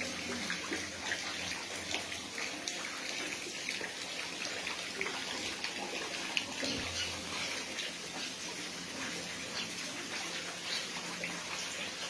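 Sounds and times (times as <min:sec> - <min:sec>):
small water splashes: 0:00.0 - 0:12.0.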